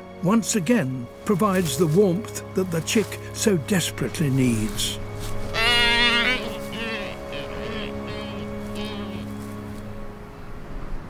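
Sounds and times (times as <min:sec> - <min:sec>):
background music with held notes: 0:00.0 - 0:11.0
albatross calling: 0:05.3 - 0:09.8.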